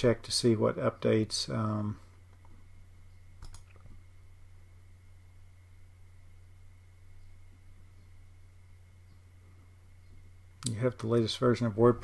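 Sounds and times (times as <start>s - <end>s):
faint low hum: 0.0s - 12.0s
computer mouse clicks: 3.4s - 3.9s.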